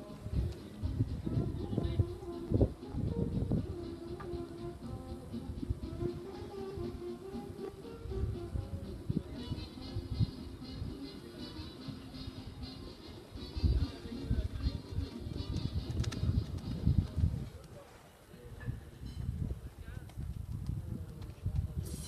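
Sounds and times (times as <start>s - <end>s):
music over loudspeakers: 0.0s - 16.6s.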